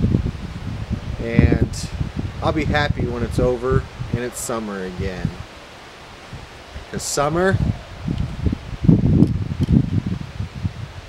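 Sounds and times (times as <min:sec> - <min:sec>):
wind buffeting microphone: 0:00.0 - 0:11.0
people talking: 0:01.2 - 0:05.4, 0:06.9 - 0:07.7.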